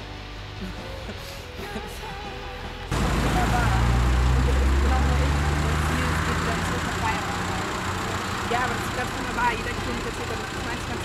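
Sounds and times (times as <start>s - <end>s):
quiet voices: 0.6s - 11.0s
car engine idling: 2.9s - 11.0s.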